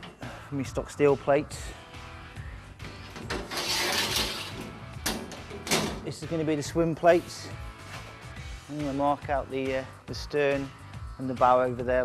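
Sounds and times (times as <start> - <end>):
background music: 0.0 - 12.0
steel bar scraping steel sheet: 3.0 - 5.2.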